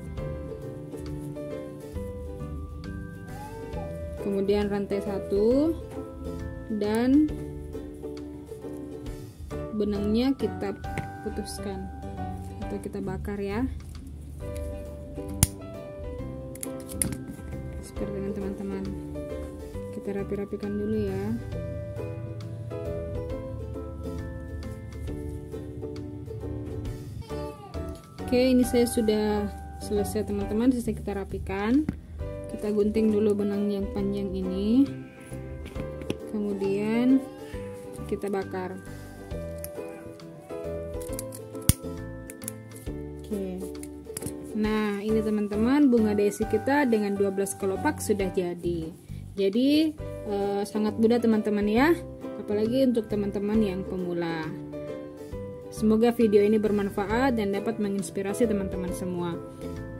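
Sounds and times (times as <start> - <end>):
background music: 0.0 - 59.9
lighter clicking: 41.0 - 42.6.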